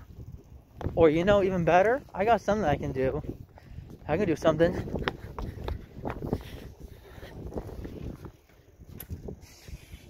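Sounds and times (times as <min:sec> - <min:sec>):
wind and handling rumble: 0:00.0 - 0:10.0.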